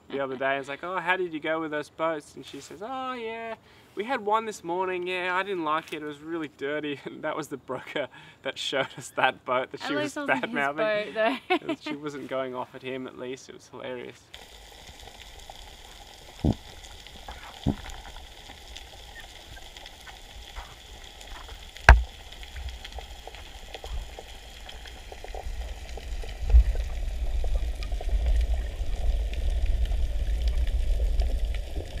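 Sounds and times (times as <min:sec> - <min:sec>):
underwater reef crackle: 0:14.3 - 0:32.0
low rushing water rumble: 0:14.4 - 0:32.0
sharp knocks: 0:21.8 - 0:22.1.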